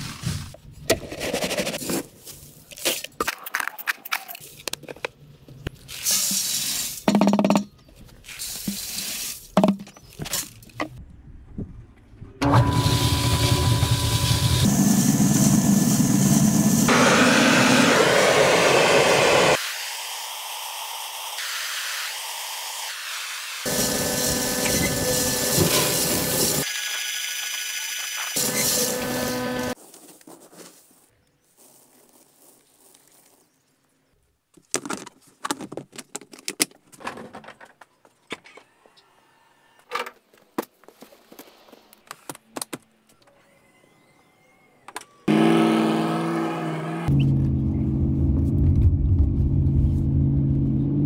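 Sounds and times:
steady machine noise: 12.4 - 26.7.

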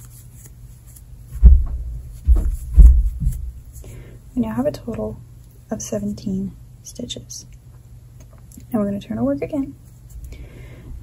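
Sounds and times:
dull low thumps: 1.3 - 3.8, 10.8 - 11.0.

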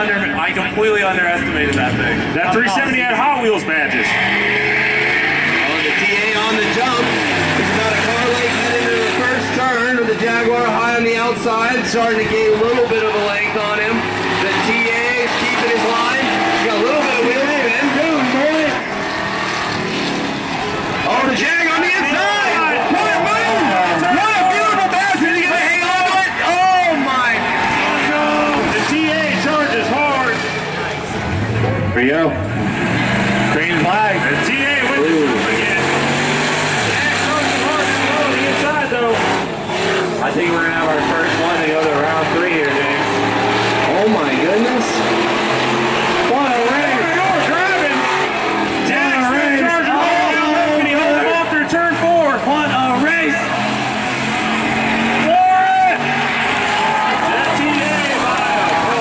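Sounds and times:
racing car engines accelerating: 0.0 - 59.0.

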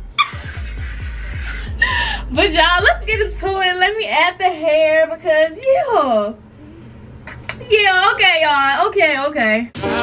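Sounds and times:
background music with steady beat: 0.0 - 3.8, 9.8 - 10.0
woman laughing breathily: 0.1 - 6.0.

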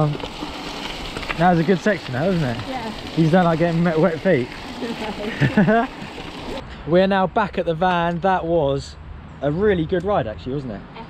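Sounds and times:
bike tyres rolling on gravel: 0.0 - 6.6
people laughing: 5.2 - 6.2.

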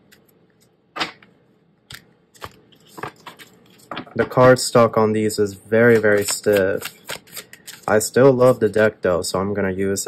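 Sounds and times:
cards being shuffled: 1.9 - 4.3, 5.8 - 8.7.

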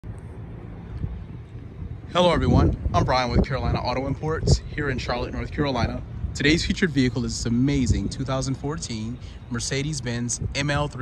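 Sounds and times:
outdoor background noise: 0.0 - 11.0
wind rumble on microphone: 0.0 - 11.0.

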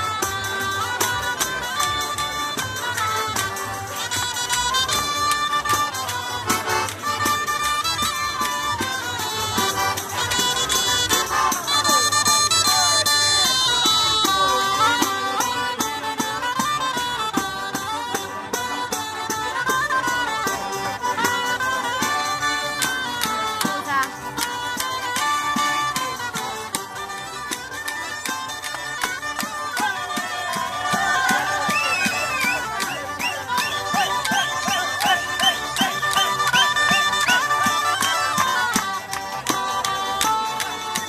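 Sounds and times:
button accordion playing: 0.0 - 41.0
fast rhythmic beat: 0.0 - 41.0
reed wind instrument melody: 0.0 - 41.0.

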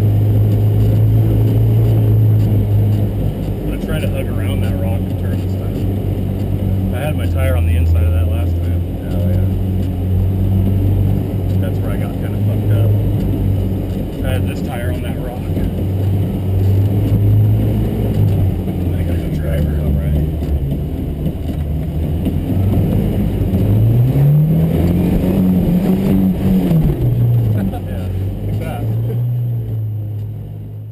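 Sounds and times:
truck engine at low revs: 0.0 - 30.9.

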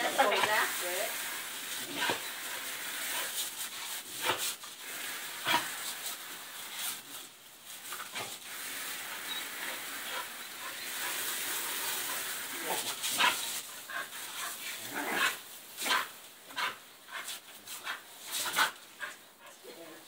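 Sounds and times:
hose nozzle spraying water: 0.0 - 19.2.

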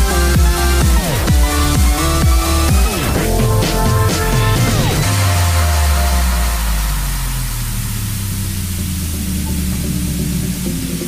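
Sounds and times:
electronic music with low bass: 0.0 - 11.0.

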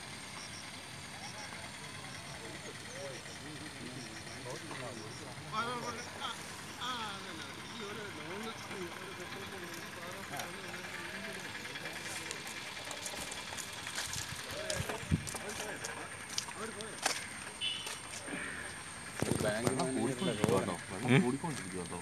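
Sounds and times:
voices talking: 0.0 - 22.0
car moving hum: 2.0 - 22.0.

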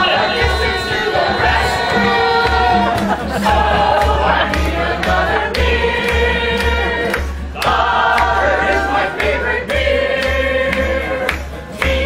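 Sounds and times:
folk band singing in chorus: 0.0 - 12.0.

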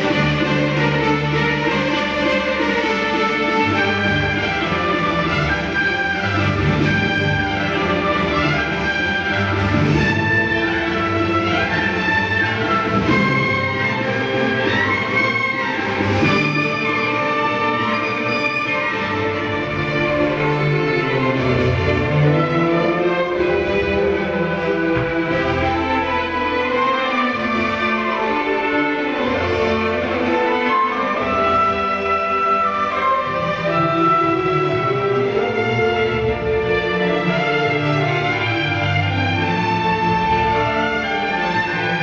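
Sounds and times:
bowed strings: 0.0 - 42.0
orchestra playing: 0.0 - 42.0.

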